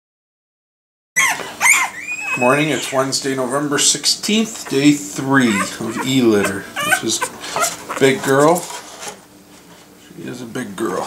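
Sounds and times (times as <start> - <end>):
puppies squealing: 1.2 - 8.6.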